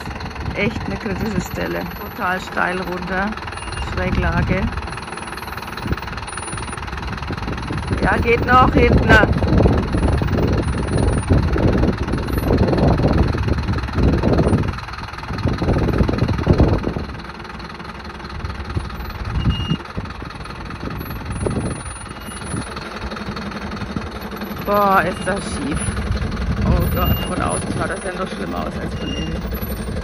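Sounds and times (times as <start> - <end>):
diesel truck engine at low revs: 0.0 - 30.0.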